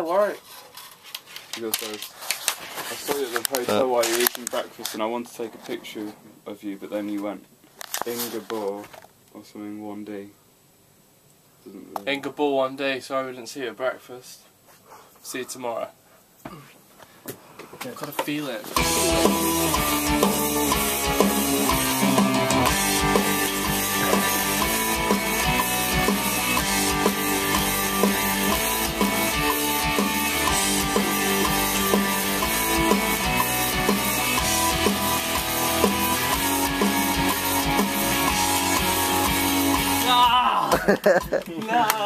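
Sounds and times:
electric bass playing: 18.8 - 40.2
pop-rock music with drums: 18.8 - 40.4.

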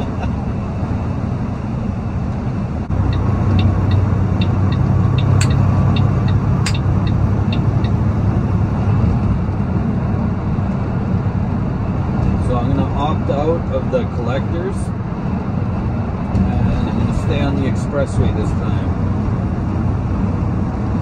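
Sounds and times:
truck engine and road noise: 0.0 - 21.0
light regular ticking: 3.0 - 8.0
sharp clicks: 3.1 - 8.0.

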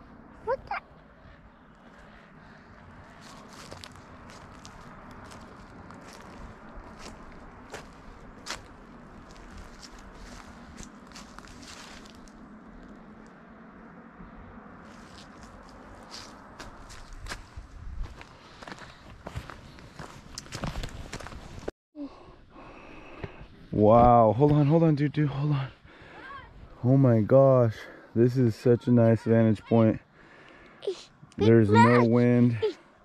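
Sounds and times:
footsteps on dry leaves: 3.0 - 12.5, 14.8 - 21.7.

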